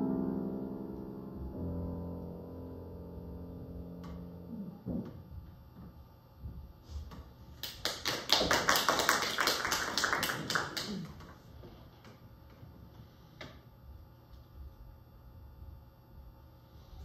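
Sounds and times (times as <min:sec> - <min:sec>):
audience applause: 0:07.6 - 0:11.4.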